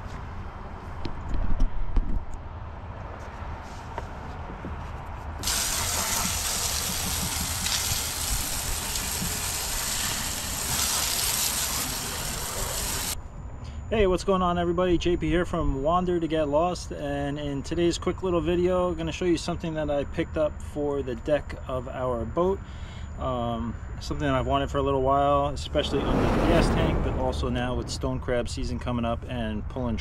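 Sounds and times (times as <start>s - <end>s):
hose nozzle spraying water: 5.4s - 13.2s
low bumps: 25.5s - 28.8s.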